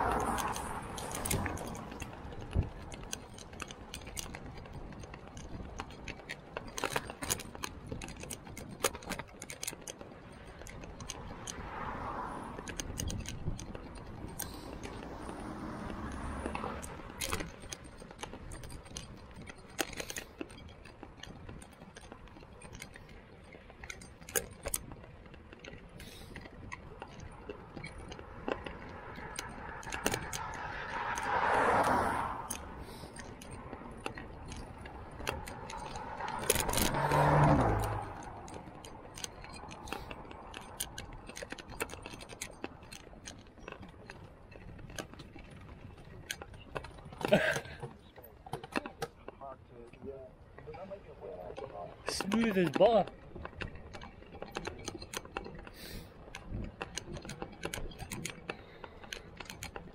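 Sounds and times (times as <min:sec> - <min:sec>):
bike rattling and clicking: 0:00.0 - 0:59.9
vehicles passing on wet road: 0:00.0 - 0:59.9.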